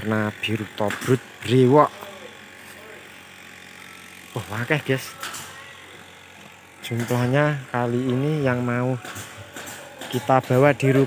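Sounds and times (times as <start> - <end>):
steady low hum: 0.0 - 9.5.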